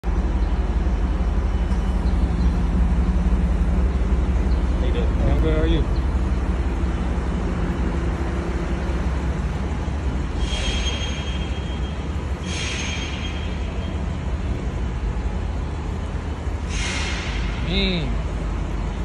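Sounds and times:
traffic rumble: 0:00.0 - 0:19.0.

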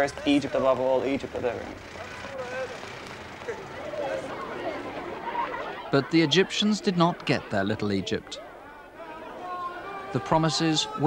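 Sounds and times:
faint voices: 0:00.0 - 0:11.0
traffic noise: 0:00.0 - 0:11.0.

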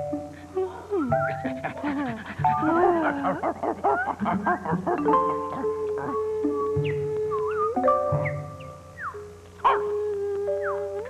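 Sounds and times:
light background music: 0:00.0 - 0:11.0
person speaking: 0:00.4 - 0:06.8
dog whimpering and yipping: 0:01.3 - 0:08.6.

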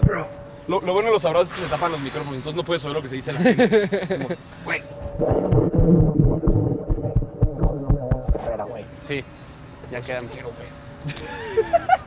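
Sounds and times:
low thumps: 0:05.0 - 0:08.8
microphone rubbing on clothing: 0:05.2 - 0:08.7.

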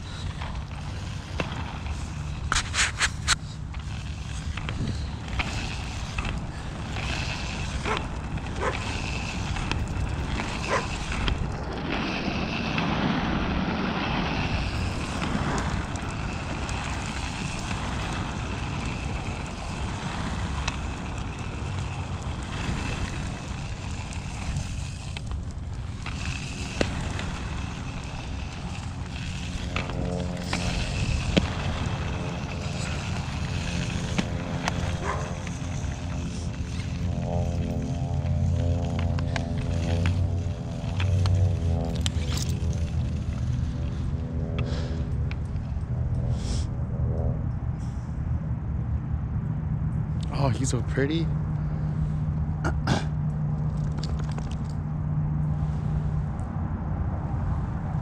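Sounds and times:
skate wheels rolling on asphalt: 0:00.0 - 0:58.0.

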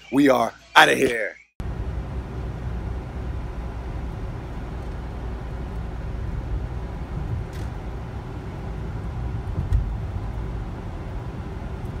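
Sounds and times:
road and engine rumble: 0:01.6 - 0:12.0.

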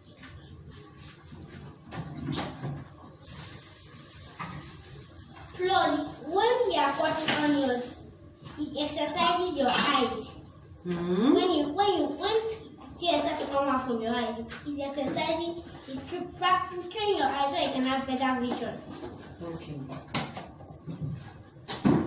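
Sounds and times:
person speaking: 0:10.9 - 0:12.4.

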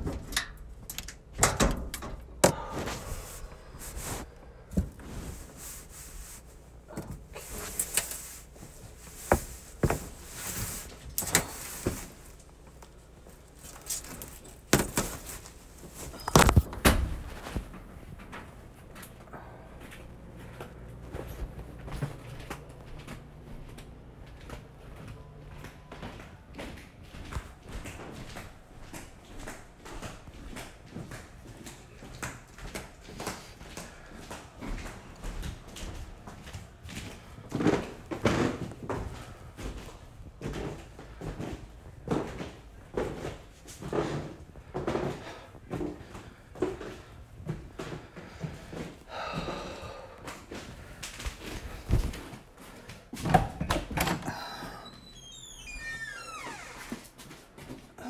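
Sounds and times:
footsteps on wooden stairs: 0:09.2 - 0:12.3.

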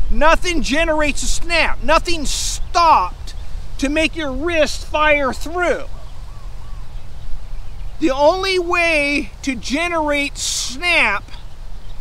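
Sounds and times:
bird chirps: 0:00.0 - 0:12.0
wind buffeting microphone: 0:00.0 - 0:12.0.

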